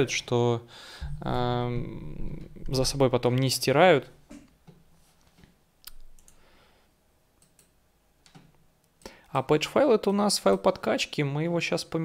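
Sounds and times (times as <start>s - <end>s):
faint computer mouse clicks: 7.4s - 9.1s.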